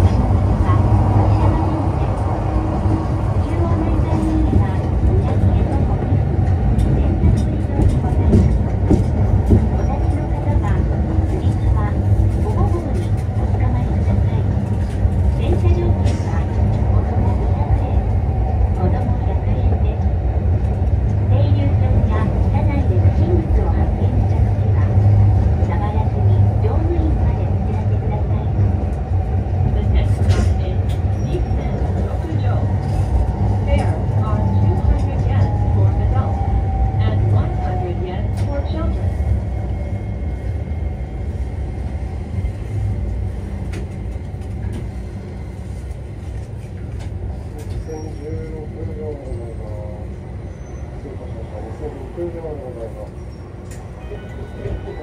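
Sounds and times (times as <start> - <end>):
tram wheels rumbling on rail: 0.0 - 55.0.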